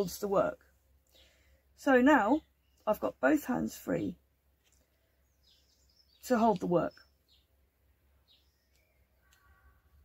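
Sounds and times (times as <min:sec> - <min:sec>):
faint bird chirp: 0:00.6 - 0:10.0.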